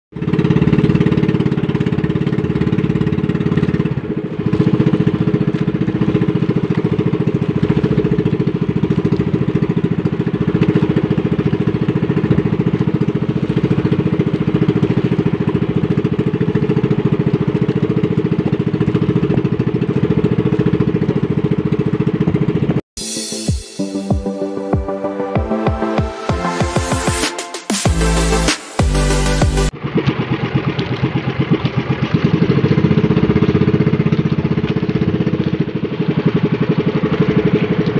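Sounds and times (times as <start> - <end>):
small boat motor running: 0.1 - 22.8, 28.0 - 37.9.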